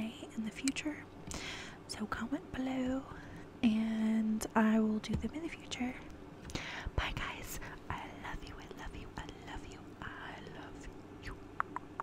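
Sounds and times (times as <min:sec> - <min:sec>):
woman whispering: 0:06.9 - 0:11.4.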